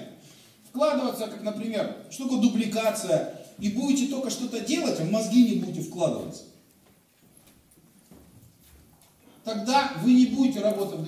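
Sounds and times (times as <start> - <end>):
faint footsteps on floor: 6.7 - 9.4.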